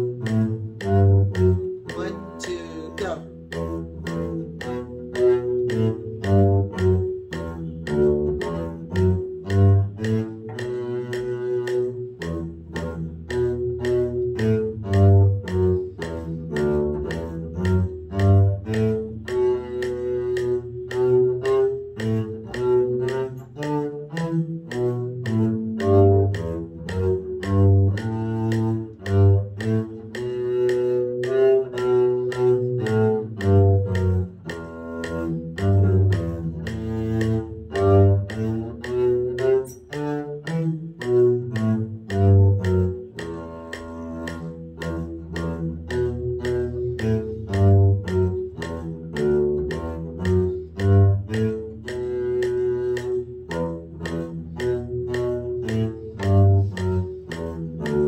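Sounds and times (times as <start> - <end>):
bowed double bass melody: 0.0 - 58.0.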